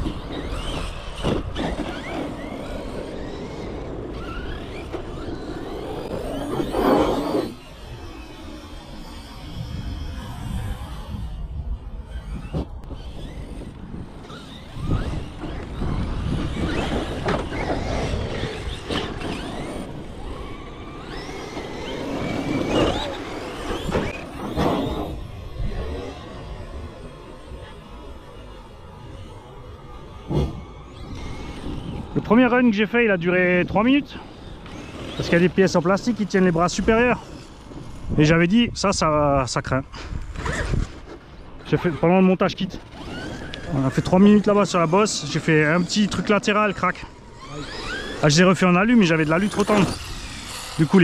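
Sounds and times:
electric motor whining: 0.0s - 51.0s.

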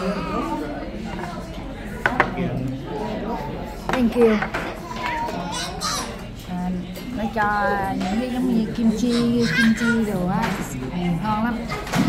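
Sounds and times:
child's voice: 4.8s - 6.2s, 8.9s - 10.2s.

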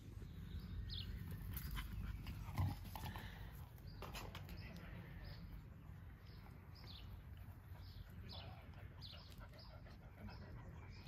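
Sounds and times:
puppies play-fighting: 1.1s - 11.0s.

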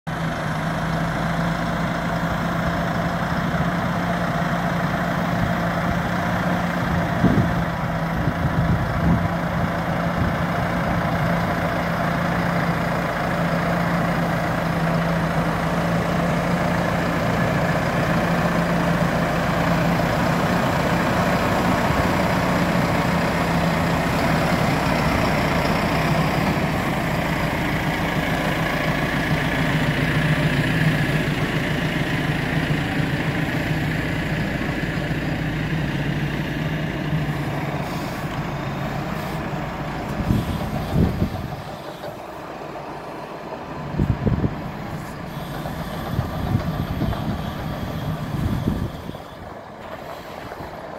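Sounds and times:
tractor diesel engine running: 0.1s - 50.9s.

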